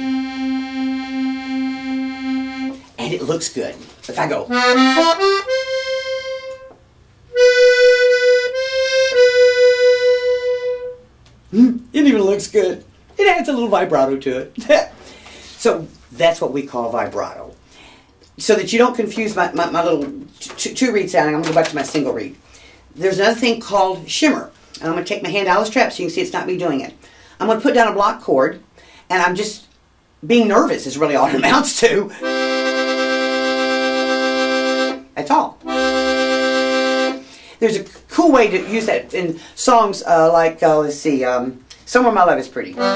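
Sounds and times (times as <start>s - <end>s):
piano accordion with bellows vibrato: 0.0s - 2.9s, 4.5s - 11.1s, 32.1s - 37.4s.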